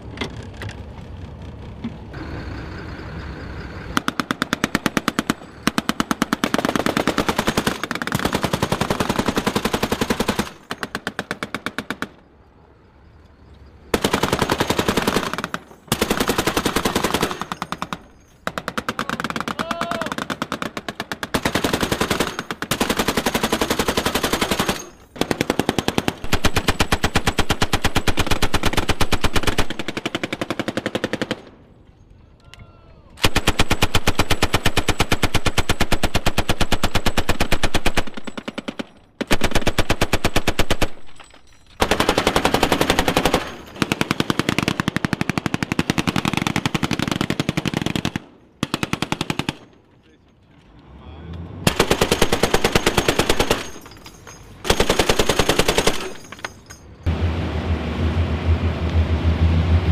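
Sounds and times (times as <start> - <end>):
machine gun firing bursts: 4.0 - 12.2, 13.9 - 31.6, 33.2 - 41.0, 41.8 - 49.8, 51.7 - 54.0, 54.6 - 56.3.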